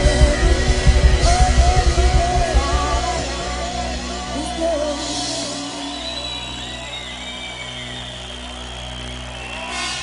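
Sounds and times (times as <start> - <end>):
live band instrumental: 0.0 - 10.0.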